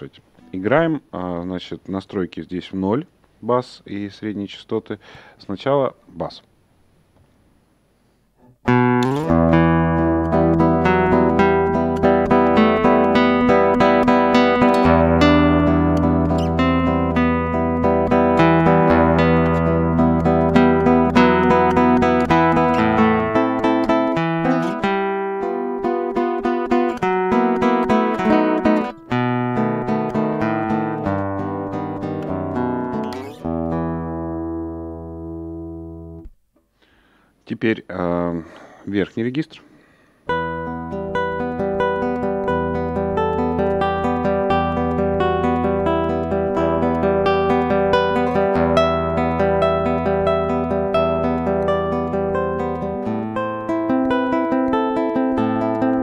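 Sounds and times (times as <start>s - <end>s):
classical guitar low notes: 8.4s - 36.4s, 40.3s - 56.0s.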